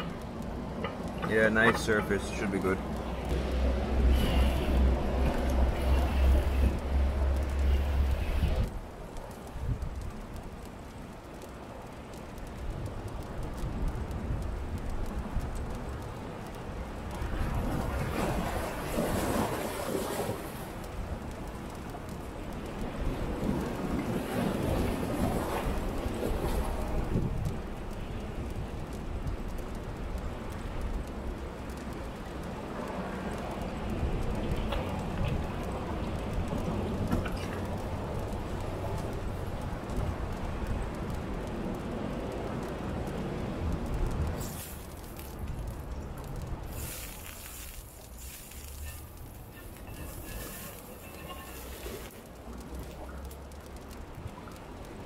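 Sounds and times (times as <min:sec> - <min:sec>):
surf washing: 0:00.0 - 0:08.8, 0:15.1 - 0:55.0
liquid hissing on hot fire: 0:00.0 - 0:55.0
wind buffeting microphone: 0:00.0 - 0:55.0.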